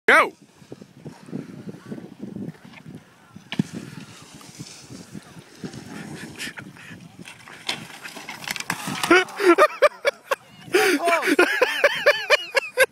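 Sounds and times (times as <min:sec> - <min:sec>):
high-pitched laughter: 0:09.1 - 0:12.9.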